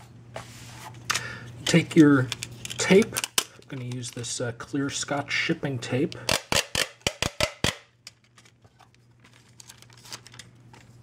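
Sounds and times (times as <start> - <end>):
tape crinkling: 6.4 - 11.0.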